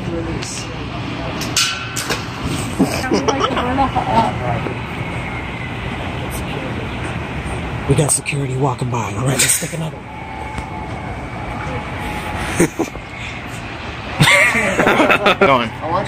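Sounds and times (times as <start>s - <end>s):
low background hum: 0.0s - 16.0s.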